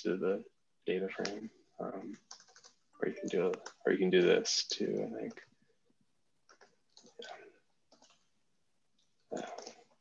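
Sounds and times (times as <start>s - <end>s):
faint keyboard typing: 1.2s - 10.0s.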